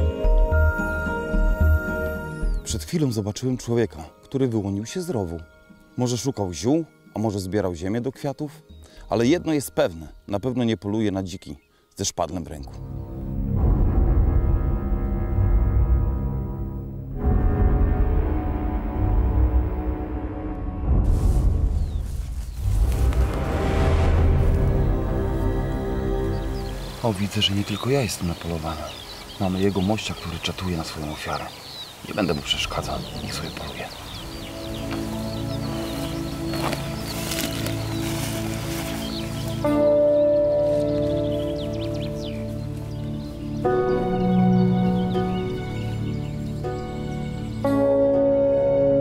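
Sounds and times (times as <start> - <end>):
birds chirping: 0.0 - 13.6, 21.4 - 49.0
soundtrack music with sustained tones: 0.0 - 49.0
deep low drone: 12.7 - 27.0.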